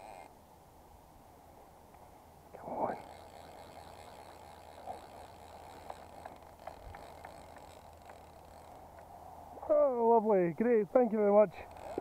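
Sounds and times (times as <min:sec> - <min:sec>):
light ticks: 0:05.5 - 0:09.1.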